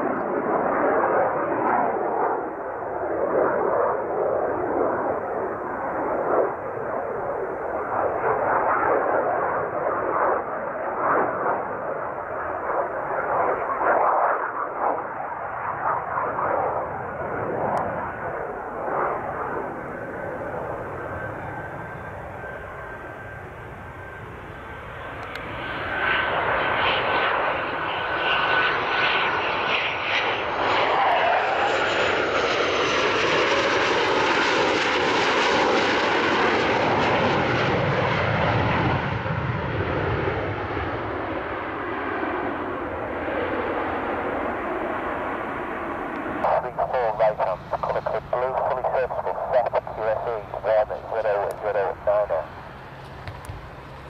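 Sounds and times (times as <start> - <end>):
jet engines flying by: 0.0 - 54.0.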